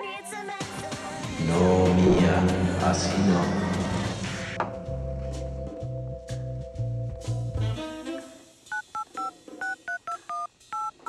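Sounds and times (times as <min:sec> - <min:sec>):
phone keypad beeps: 0:08.7 - 0:11.0.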